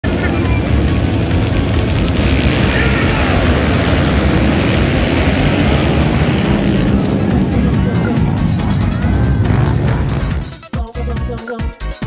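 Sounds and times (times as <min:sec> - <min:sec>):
dirt bike engines running: 0:00.0 - 0:10.6
music: 0:00.0 - 0:12.0
voice: 0:02.6 - 0:03.6, 0:05.8 - 0:11.6.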